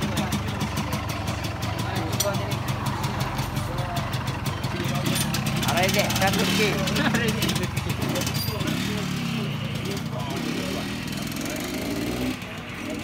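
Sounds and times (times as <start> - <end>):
motorcycle engine revving away: 0.0 - 13.0.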